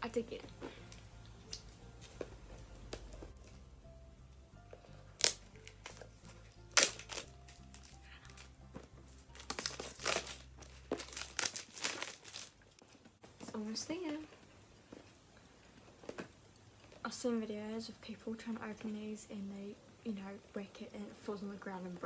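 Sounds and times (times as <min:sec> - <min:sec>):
plastic wrap crinkling and tearing: 0:05.0 - 0:13.2
packaging rustling: 0:05.2 - 0:13.2.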